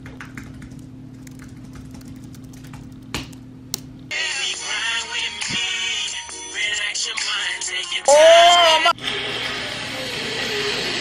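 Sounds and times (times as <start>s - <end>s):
steady low hum: 0.0s - 6.1s.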